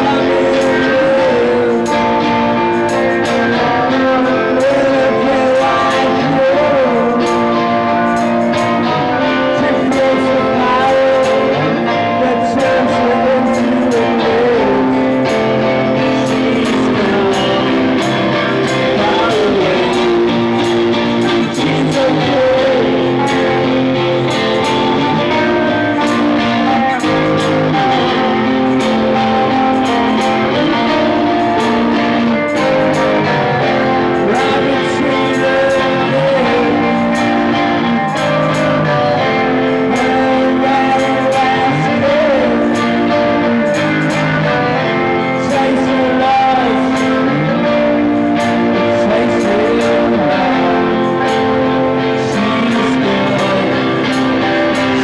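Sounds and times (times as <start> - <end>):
electric guitar strumming: 0.0 - 55.0
man singing lead vocal: 0.0 - 55.0.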